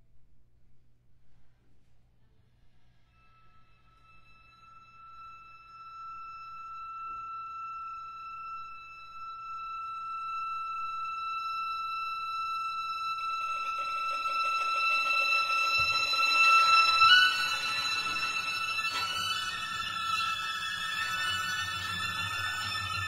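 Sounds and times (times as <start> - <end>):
clarinet high held note: 11.2 - 23.0
string quartet playing softly: 11.4 - 23.0.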